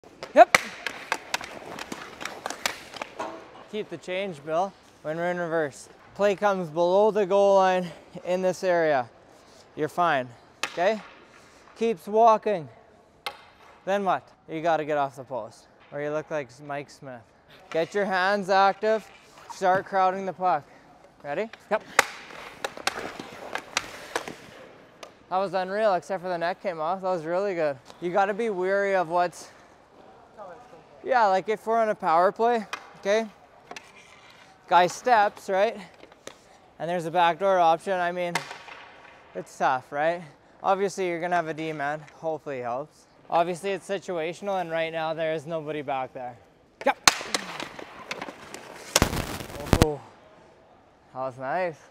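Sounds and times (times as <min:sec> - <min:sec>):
hockey stick hitting puck: 0:00.1 - 0:04.0, 0:10.6 - 0:11.3, 0:13.2 - 0:13.8, 0:21.4 - 0:25.2, 0:32.5 - 0:36.4, 0:38.2 - 0:39.3, 0:46.8 - 0:49.0
skates scraping ice: 0:00.1 - 0:06.7, 0:17.8 - 0:20.2, 0:21.5 - 0:24.9, 0:32.4 - 0:36.6, 0:46.8 - 0:49.0.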